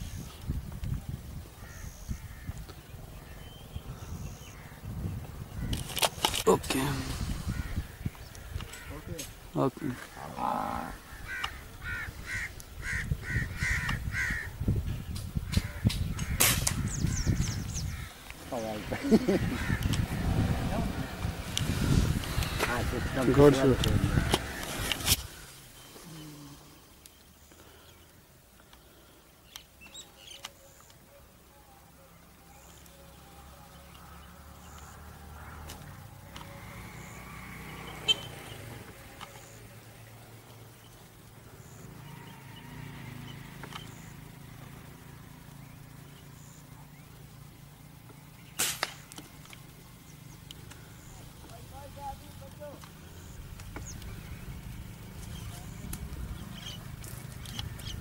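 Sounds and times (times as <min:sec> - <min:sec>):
crow cawing: 0:01.6 - 0:02.6, 0:07.5 - 0:08.1, 0:08.7 - 0:09.1, 0:09.9 - 0:14.5, 0:17.9 - 0:18.3, 0:19.0 - 0:20.2
sharp crack: 0:15.1 - 0:16.9, 0:48.5 - 0:49.6.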